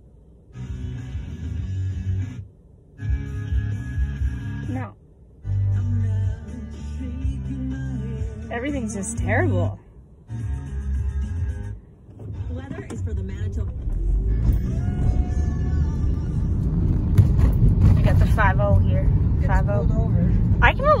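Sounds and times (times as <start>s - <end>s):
car engine and road rumble: 0.0s - 21.0s
car radio music: 0.1s - 17.1s.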